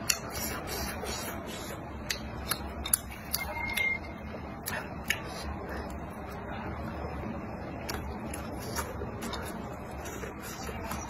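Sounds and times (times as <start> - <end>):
low steady hum: 0.0 - 11.0
chewing food: 7.8 - 11.0.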